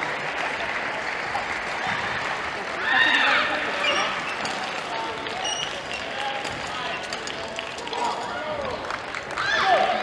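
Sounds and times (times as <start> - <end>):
spectators applauding: 0.0 - 3.8, 6.8 - 10.0.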